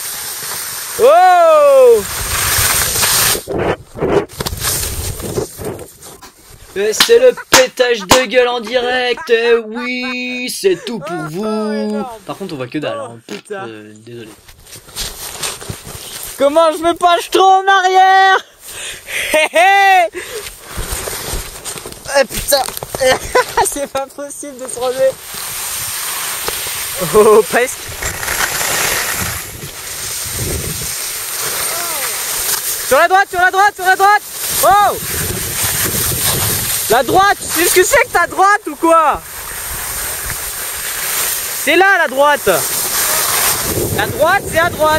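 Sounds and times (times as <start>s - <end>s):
skis scraping over snow: 0.0s - 7.4s, 14.1s - 17.3s, 20.4s - 44.9s
wind on microphone: 1.8s - 6.8s, 27.7s - 31.0s, 34.5s - 38.4s, 43.0s - 44.9s.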